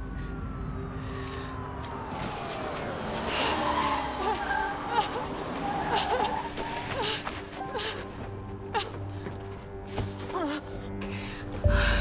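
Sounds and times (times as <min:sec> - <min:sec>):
police siren winding down: 0:00.4 - 0:04.8
low drone: 0:10.8 - 0:12.0.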